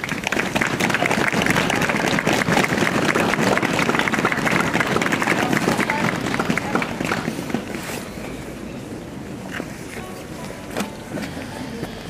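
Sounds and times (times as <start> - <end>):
crowd murmur: 0.0 - 12.0
traffic hum: 0.0 - 12.0.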